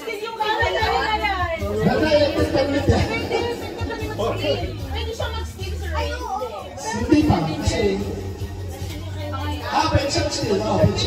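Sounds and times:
background music: 0:00.0 - 0:11.0
voices talking: 0:00.0 - 0:11.0.

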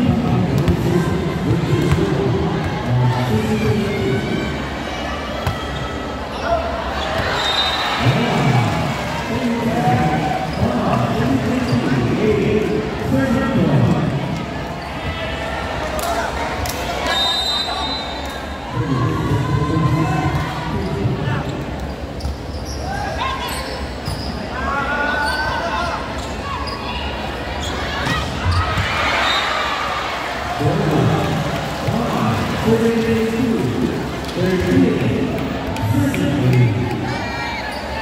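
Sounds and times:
spectators talking in a hall: 0:00.0 - 0:38.0.

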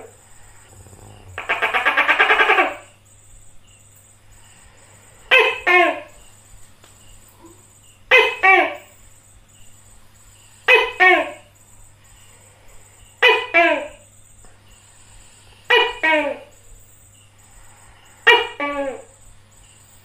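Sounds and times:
gecko two-syllable calls: 0:00.6 - 0:02.9.

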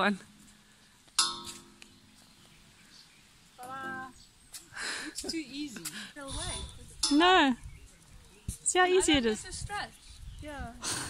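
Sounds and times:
metal handle clanging on steel tube: 0:01.2 - 0:01.8, 0:07.0 - 0:07.4.

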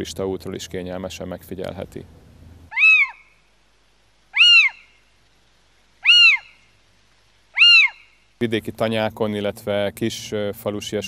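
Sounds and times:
owl calling: 0:02.7 - 0:03.5, 0:04.3 - 0:05.1, 0:06.0 - 0:06.8, 0:07.5 - 0:08.4.

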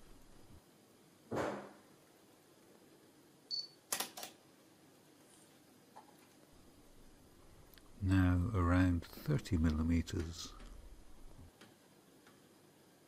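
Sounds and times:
high autofocus beep: 0:03.5 - 0:03.8
soft rush of noise: 0:04.5 - 0:13.0.

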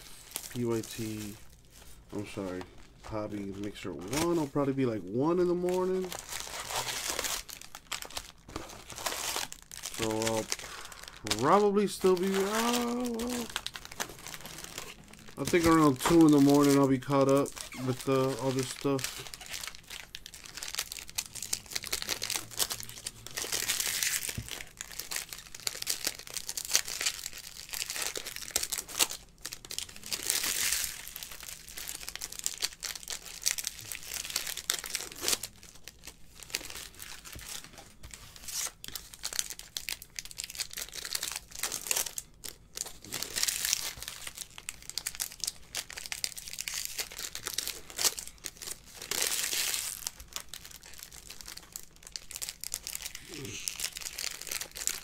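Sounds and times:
wrappers crinkling and tearing: 0:00.0 - 0:55.0.

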